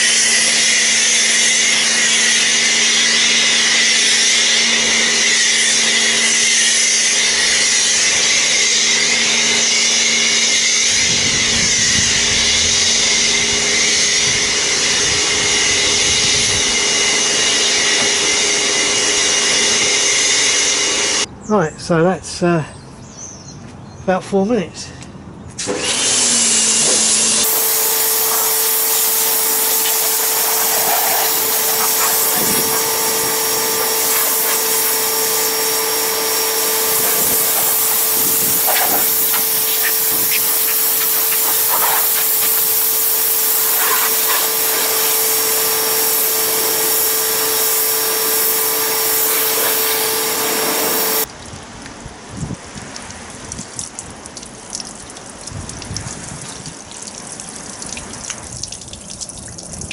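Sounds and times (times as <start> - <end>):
pressure washer pump hum and jet: 0.0 - 21.3, 25.6 - 51.3
water flowing from a hose: 25.6 - 59.9.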